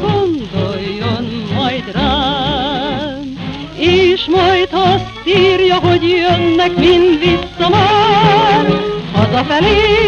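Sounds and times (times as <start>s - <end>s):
song accompaniment: 0.0s - 10.0s
woman singing with vibrato: 0.0s - 10.0s.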